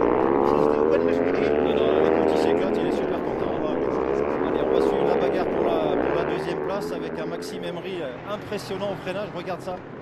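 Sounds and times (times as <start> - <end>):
racing motorcycle engines revving: 0.0 - 8.0.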